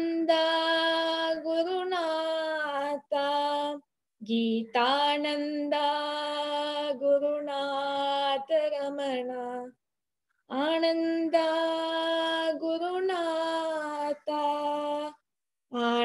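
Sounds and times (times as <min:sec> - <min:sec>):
woman singing unaccompanied: 0:00.0 - 0:09.8, 0:10.5 - 0:16.0.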